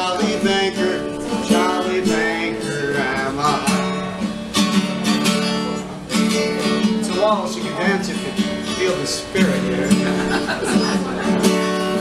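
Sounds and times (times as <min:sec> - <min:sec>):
man singing: 0:00.0 - 0:04.4, 0:06.1 - 0:10.8
acoustic guitar strumming: 0:00.0 - 0:12.0.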